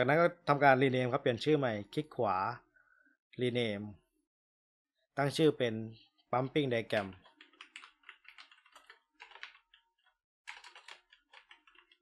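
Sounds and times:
keyboard typing clicks: 7.2s - 9.8s, 10.5s - 12.0s.

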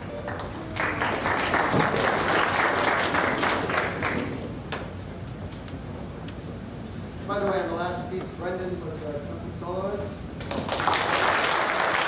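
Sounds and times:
audience applauding: 0.0s - 4.4s, 10.5s - 12.0s.

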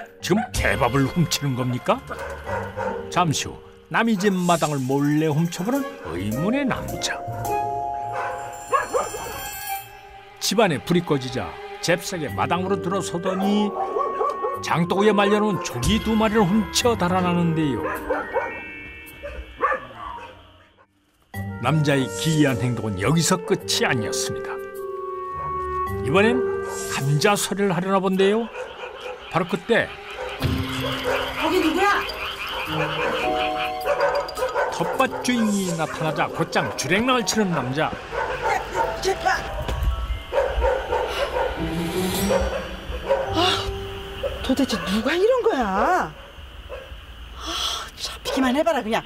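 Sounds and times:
background music: 0.0s - 46.0s
dog barking: 2.0s - 3.2s, 4.1s - 4.4s, 8.1s - 9.5s, 12.6s - 14.8s, 15.5s - 16.0s, 17.8s - 20.9s, 28.4s - 47.0s, 48.2s - 48.6s.

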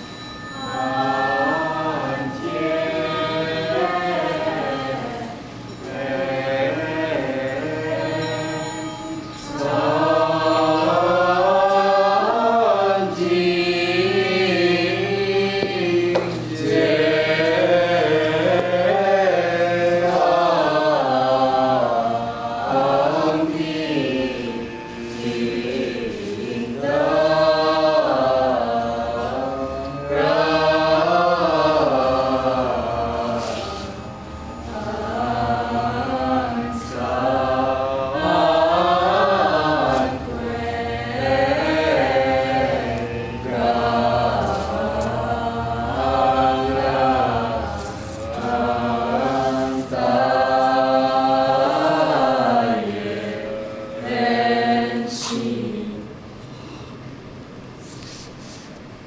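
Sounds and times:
choir chanting: 0.0s - 57.7s
steady low drone: 0.0s - 57.9s
singers breathing: 56.3s - 58.8s.

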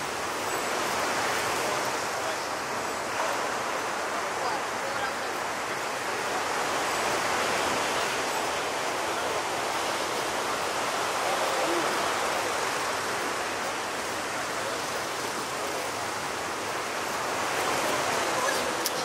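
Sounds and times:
ocean surf breaking: 0.0s - 19.0s.

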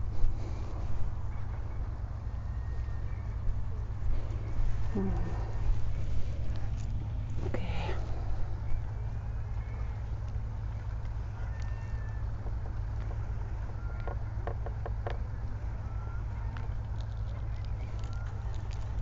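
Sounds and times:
low outdoor rumble: 0.0s - 19.0s.

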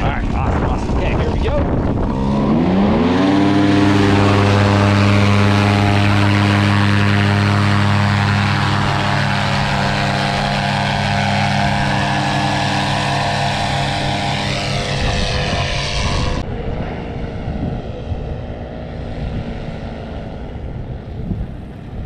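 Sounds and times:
paramotor engine drone: 0.0s - 22.0s.

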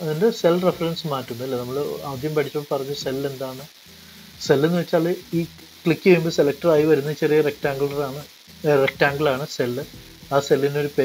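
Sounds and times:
man speaking: 0.0s - 3.7s, 4.4s - 11.0s.

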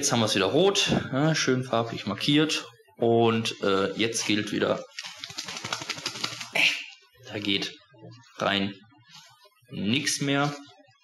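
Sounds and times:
plastic armband clicking and scraping: 4.9s - 6.6s.

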